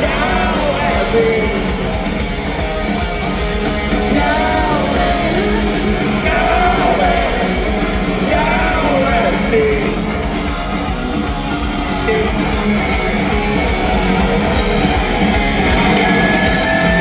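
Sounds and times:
electric guitar: 0.0 - 17.0
live rock band playing: 0.0 - 17.0.

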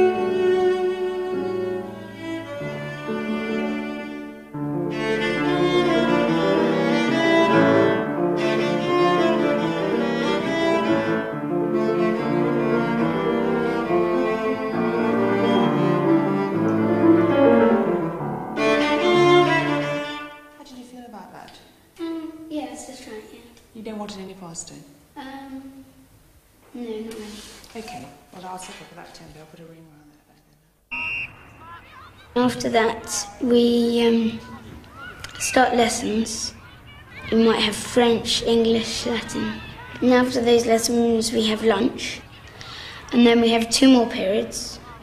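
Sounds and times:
piano accompaniment: 0.0 - 20.5
cello melody: 0.0 - 20.6.

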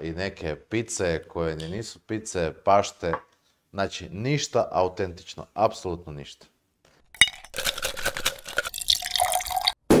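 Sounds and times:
liquid pouring and splashing: 7.2 - 9.8.

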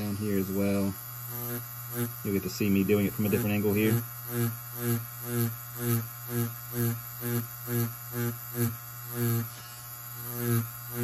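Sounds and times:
tattoo machine buzzing: 0.0 - 11.0.

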